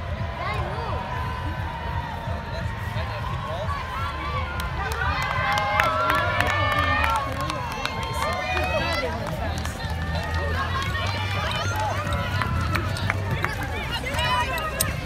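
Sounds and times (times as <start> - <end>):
crowd talking and calling out: 0.0 - 15.0
running feet on grass: 0.0 - 15.0.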